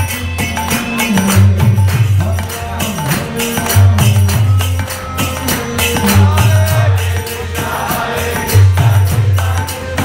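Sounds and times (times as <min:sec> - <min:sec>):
harmonium: 0:00.0 - 0:10.0
jingling hand cymbals: 0:00.0 - 0:10.0.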